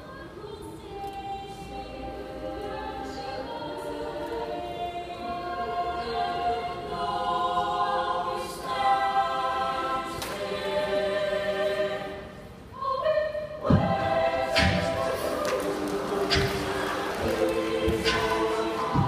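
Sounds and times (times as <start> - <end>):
choir singing a cappella: 0.0 - 19.0.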